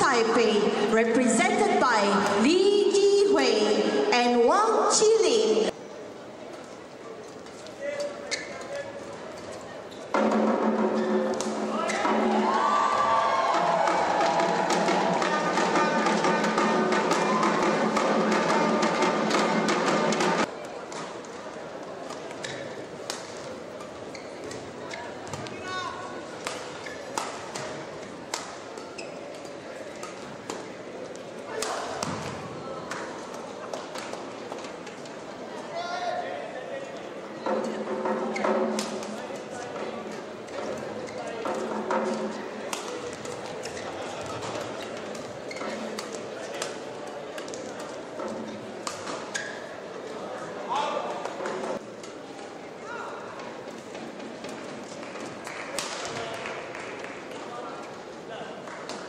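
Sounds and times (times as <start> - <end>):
voices in a hall: 0.0 - 59.0
shoe squeaks on court: 8.0 - 10.1, 23.8 - 25.4, 28.8 - 30.2, 43.6 - 46.0
music in a hall: 10.1 - 20.5.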